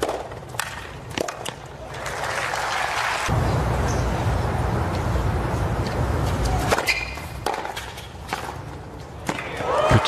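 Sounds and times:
tennis ball hits: 0:06.6 - 0:08.6.

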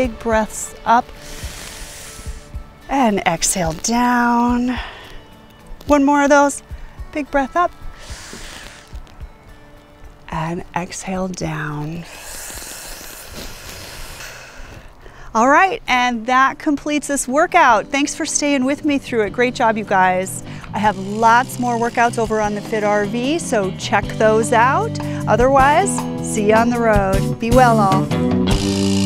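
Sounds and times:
faint background music: 0:00.0 - 0:29.0
woman breathing in deeply: 0:01.2 - 0:02.6, 0:04.7 - 0:05.4, 0:08.0 - 0:09.0, 0:12.0 - 0:15.3, 0:20.4 - 0:20.7, 0:25.0 - 0:25.3.

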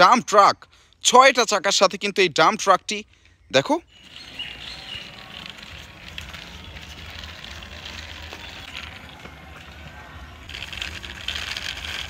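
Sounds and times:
toy truck wheels rolling on concrete: 0:03.9 - 0:12.0.

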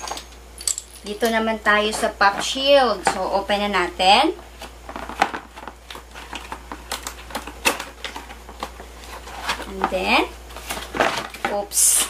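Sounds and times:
plastic packaging crinkling: 0:04.5 - 0:12.0.

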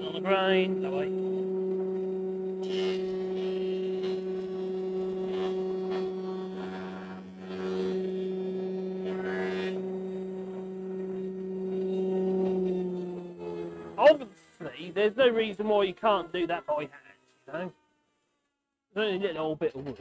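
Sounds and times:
thickness planer humming: 0:00.0 - 0:18.4.

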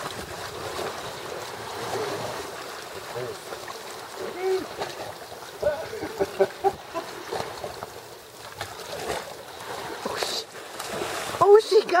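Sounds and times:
water washing: 0:00.0 - 0:12.0.

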